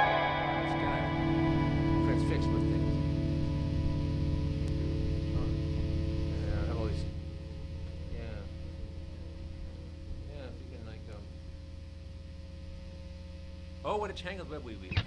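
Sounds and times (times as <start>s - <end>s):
guitar amplifier humming and buzzing: 0.0s - 15.0s
mains hum: 0.0s - 15.0s.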